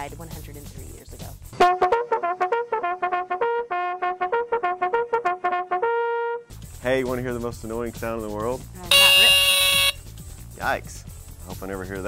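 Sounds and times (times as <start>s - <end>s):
bugle call: 8.9s - 10.0s.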